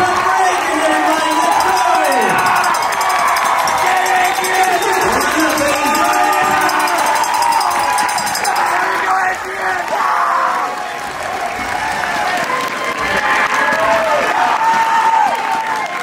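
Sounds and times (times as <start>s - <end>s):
crowd cheering and shouting: 0.0s - 16.0s
crowd clapping: 0.0s - 16.0s.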